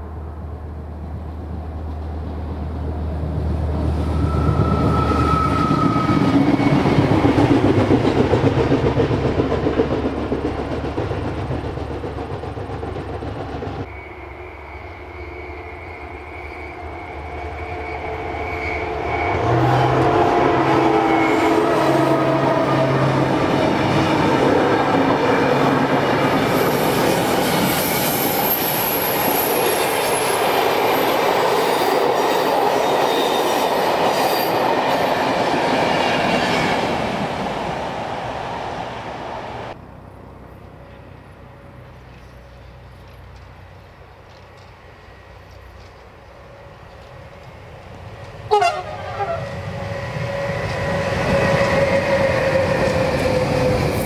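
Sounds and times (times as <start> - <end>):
rail vehicle passing: 0.0 - 54.0
train wheel and track noise: 0.0 - 54.0
clickety-clack of wheels on rails: 1.0 - 13.9, 17.2 - 39.8, 40.6 - 54.0.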